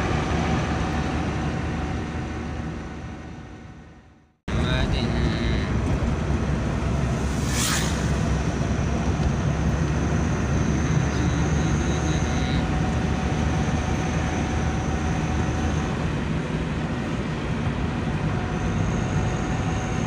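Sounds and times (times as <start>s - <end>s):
car engine and road noise: 0.0s - 20.0s.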